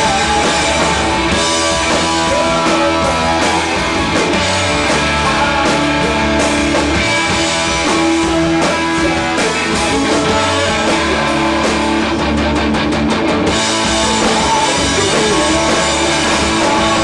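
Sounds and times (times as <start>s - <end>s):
rock band playing: 0.0s - 17.0s.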